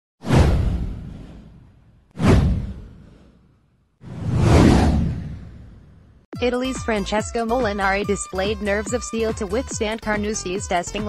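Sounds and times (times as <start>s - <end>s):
deep rumble: 4.1s - 6.2s.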